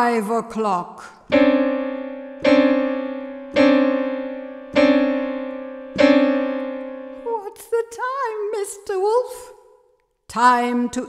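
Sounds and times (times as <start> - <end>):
piano note ringing: 1.3 - 7.3.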